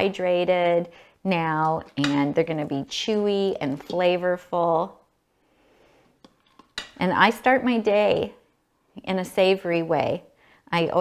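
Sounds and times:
spoon scraping metal pot: 1.6 - 4.2.

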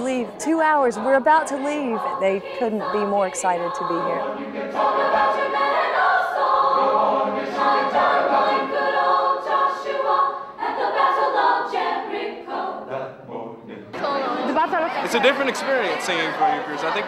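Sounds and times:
girls choir singing: 0.0 - 17.0.

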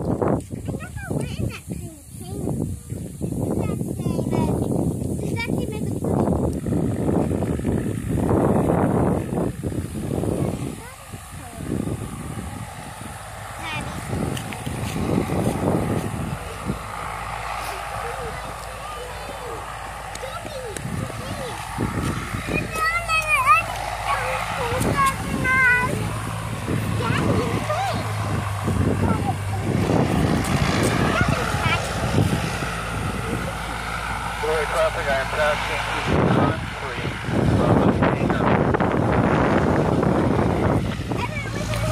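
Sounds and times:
distant small plane engine drone: 0.0 - 41.9.

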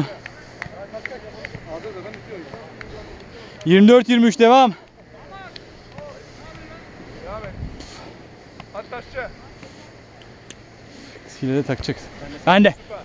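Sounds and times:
wind noise on microphone: 7.2 - 8.0.

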